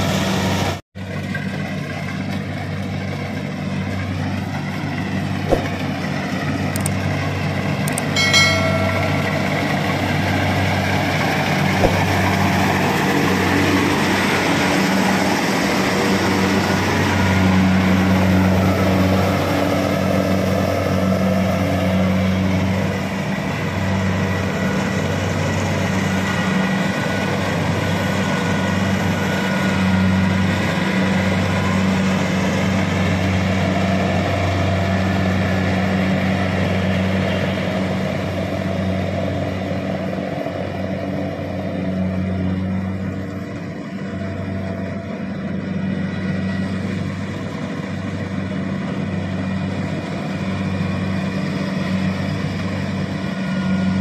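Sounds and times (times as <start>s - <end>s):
combine harvester running: 0.0s - 54.0s.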